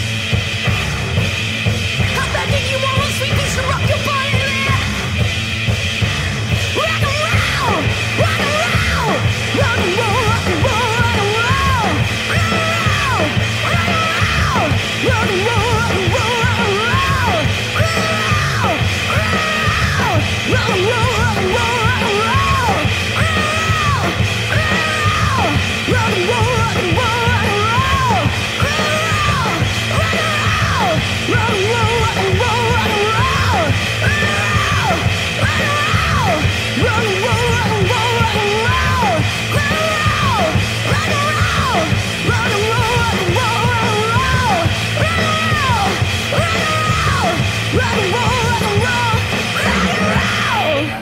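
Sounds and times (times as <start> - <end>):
bass and drums: 0.0 - 51.0
punk rock song with yelled vocal: 0.0 - 51.0
person singing: 6.7 - 51.0.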